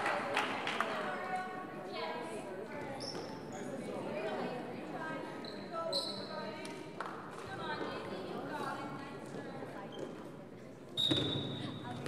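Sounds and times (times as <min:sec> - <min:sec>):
voices in background: 0:00.0 - 0:12.0
shoe squeaks on court floor: 0:03.0 - 0:03.7, 0:05.4 - 0:06.4, 0:11.0 - 0:12.0.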